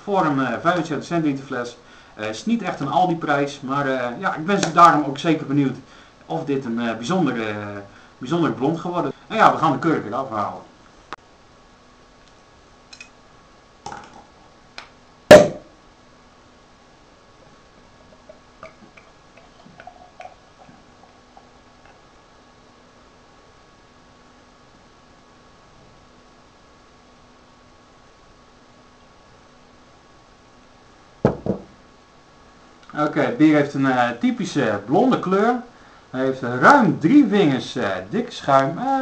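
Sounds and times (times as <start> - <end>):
loud cork pop: 15.3 - 15.7
glass bottle set on table: 31.2 - 31.7.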